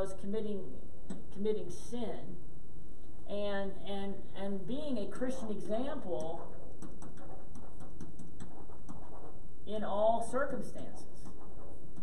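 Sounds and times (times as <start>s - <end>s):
low room hum: 0.0s - 12.0s
pen ticking on whiteboard: 6.2s - 9.4s.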